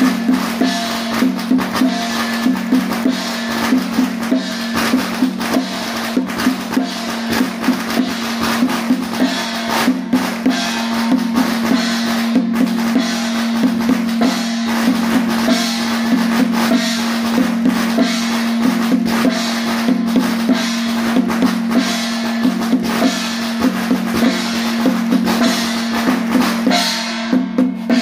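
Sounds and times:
cymbals: 0.0 - 28.0
drum beaten fast: 0.0 - 28.0.

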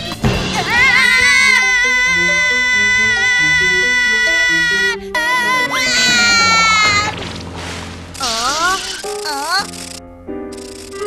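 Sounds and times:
background music: 0.0 - 11.0
cartoon boy yelling: 0.8 - 6.8.

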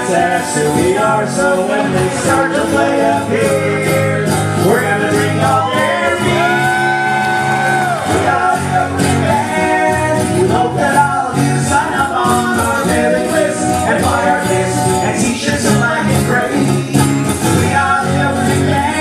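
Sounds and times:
man singing: 0.0 - 19.0
strummed acoustic guitar: 0.0 - 19.0.

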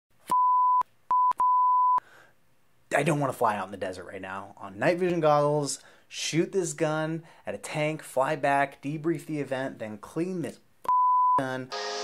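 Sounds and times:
electronic beep tone: 10.9 - 12.0.

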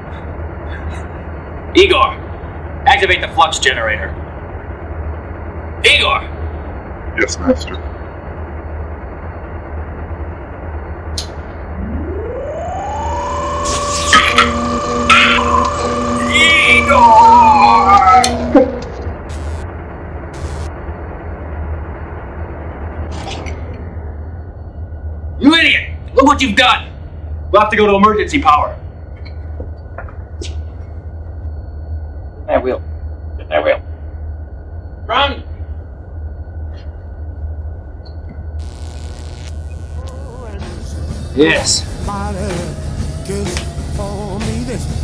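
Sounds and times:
low machine rumble: 0.0 - 45.0
electrical whine gliding down: 8.5 - 23.1, 31.0 - 44.2.

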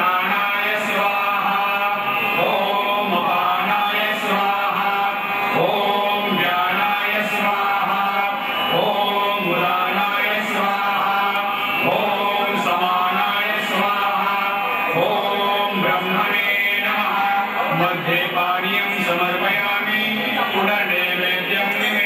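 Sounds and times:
devotional chanting: 0.0 - 22.0
steady held drone: 0.0 - 22.0.

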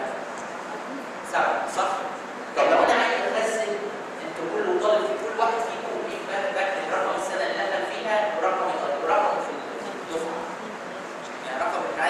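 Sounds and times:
man lecturing into a microphone: 1.3 - 10.6, 11.3 - 12.0.

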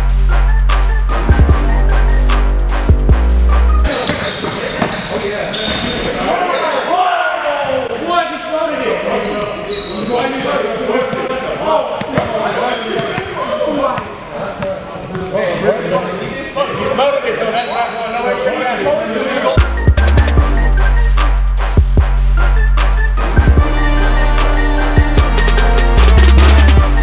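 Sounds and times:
sneakers squeaking on court: 3.8 - 6.4, 8.8 - 11.3, 12.0 - 14.2.

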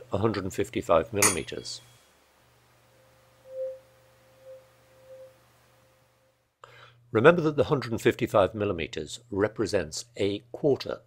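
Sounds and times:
tuning fork pure tone: 2.8 - 6.4.

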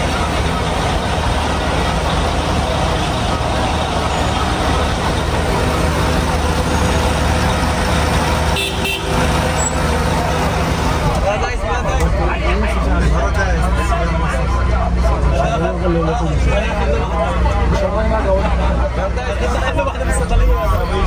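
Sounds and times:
bus engine humming: 0.0 - 21.0
heavy street traffic: 0.0 - 21.0
murmur of crowd voices: 0.0 - 21.0.

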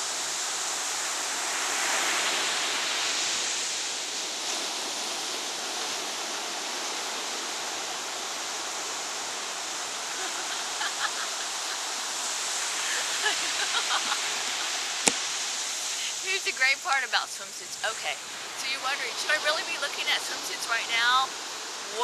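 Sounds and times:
ocean surf on beach: 0.0 - 22.0.

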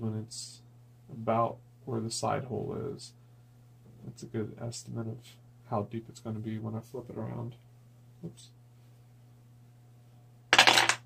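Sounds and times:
clatter of small hard objects: 10.6 - 11.0.

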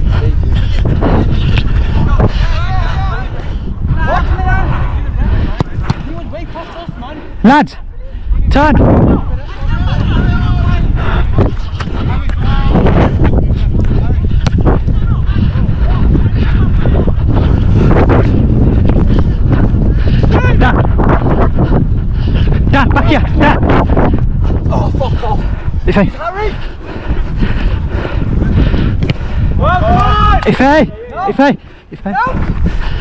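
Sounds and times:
wind buffeting microphone: 0.0 - 33.0
ball being kicked: 5.6 - 6.1
players shouting: 9.2 - 12.8, 29.6 - 32.5
distant shouts: 29.6 - 31.4.

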